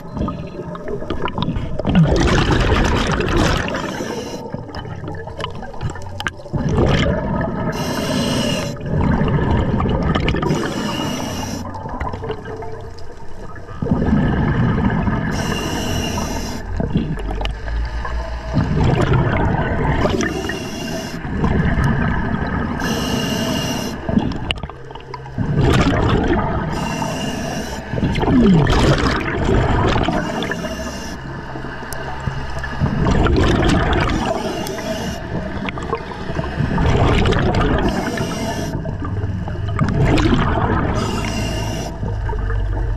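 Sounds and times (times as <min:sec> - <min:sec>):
exhaled air bubbling: 0:00.0 - 0:42.9
diver inhaling through regulator: 0:03.5 - 0:04.6, 0:07.7 - 0:08.9, 0:10.4 - 0:11.9, 0:15.3 - 0:16.8, 0:20.0 - 0:21.4, 0:22.8 - 0:24.2, 0:26.6 - 0:28.6, 0:30.1 - 0:31.4, 0:34.1 - 0:35.5, 0:37.8 - 0:38.9, 0:40.9 - 0:42.1.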